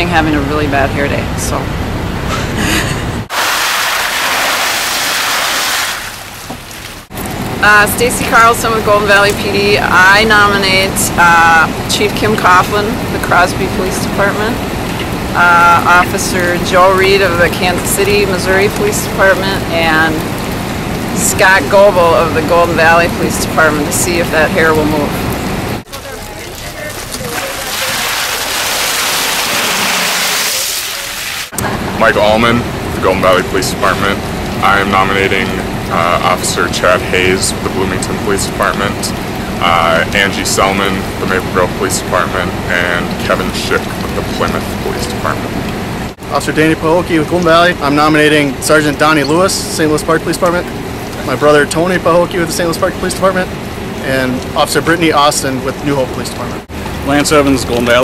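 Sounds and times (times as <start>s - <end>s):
voices: 0.0s - 1.8s, 7.6s - 20.4s, 21.0s - 28.8s, 30.3s - 58.0s
water pouring into steel bucket: 3.3s - 7.0s, 25.9s - 31.5s
ice water pouring and splashing: 3.3s - 58.0s.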